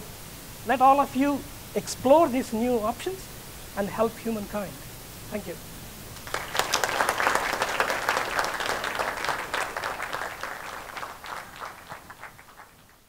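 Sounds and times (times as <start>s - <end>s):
audience applauding: 6.2s - 13.0s.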